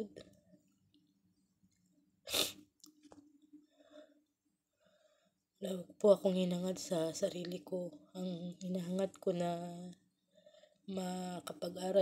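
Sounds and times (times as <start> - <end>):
woman sniffing while crying: 2.3 - 2.6.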